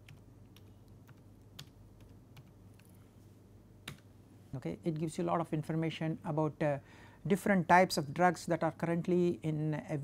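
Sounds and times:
typing on computer keyboard: 0:00.0 - 0:03.0.

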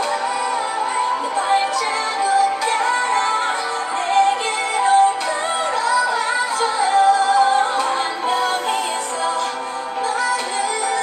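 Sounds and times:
woman singing ballad: 0:00.0 - 0:11.0.

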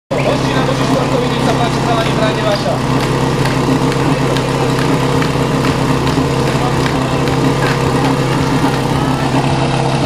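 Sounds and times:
voices talking: 0:00.1 - 0:09.7
small engine running: 0:00.1 - 0:10.0.

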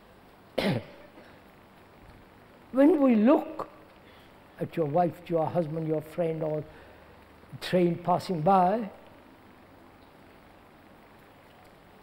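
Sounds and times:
person coughing: 0:00.6 - 0:01.4.

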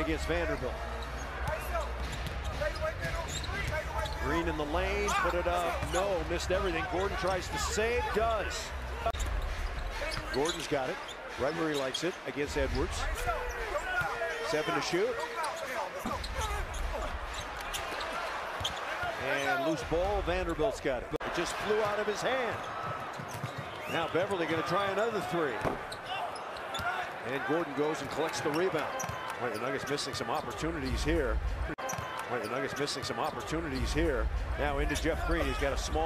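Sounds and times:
crowd noise: 0:00.0 - 0:36.0
sneakers squeaking: 0:00.4 - 0:06.2, 0:09.1 - 0:12.1, 0:13.2 - 0:19.0, 0:22.5 - 0:24.8, 0:25.5 - 0:27.1, 0:28.4 - 0:30.6.

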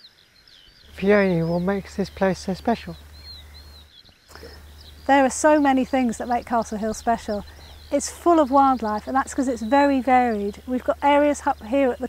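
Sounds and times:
faint outdoor background: 0:00.0 - 0:12.0
high bird chirps: 0:00.0 - 0:12.0.

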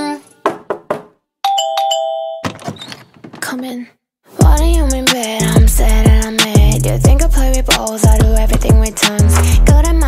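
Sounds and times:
two-tone doorbell chime: 0:01.4 - 0:02.5
person speaking: 0:03.4 - 0:04.0.

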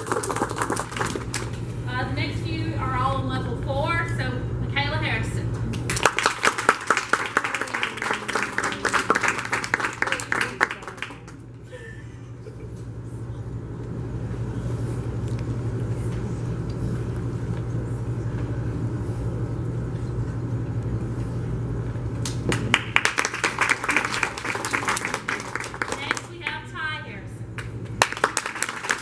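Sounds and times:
audience applause: 0:00.0 - 0:01.6, 0:05.9 - 0:11.5, 0:22.5 - 0:26.3, 0:28.0 - 0:29.0.

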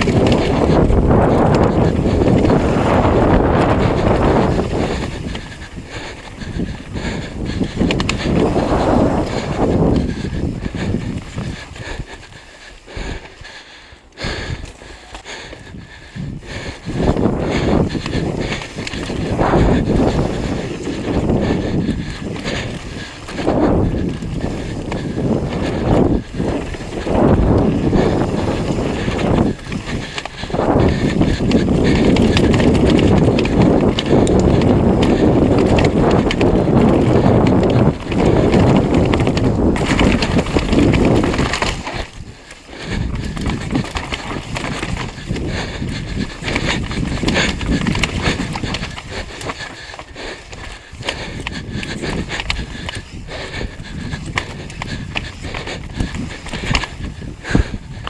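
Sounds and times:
bike rattling over rocks: 0:00.0 - 0:13.6, 0:14.3 - 0:58.0
bike tyre and frame noise: 0:00.0 - 0:58.0
wind rushing on microphone: 0:00.0 - 0:58.0.

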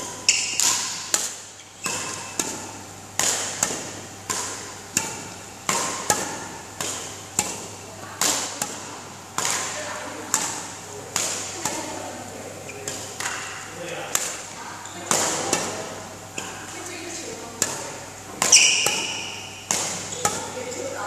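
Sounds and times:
rackets hitting shuttlecocks: 0:00.0 - 0:21.0.

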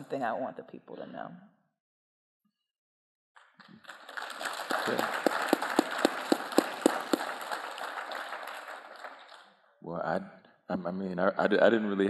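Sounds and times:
audience applauding: 0:03.4 - 0:09.5
sharp claps close by: 0:03.4 - 0:09.5.

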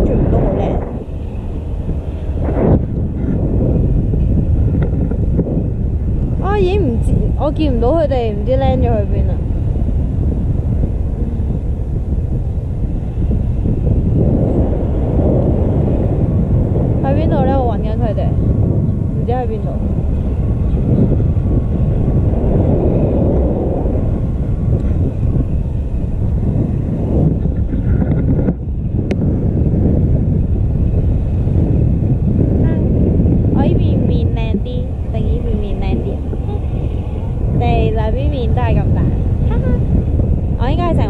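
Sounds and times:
wind rushing over microphone: 0:00.0 - 0:41.0.

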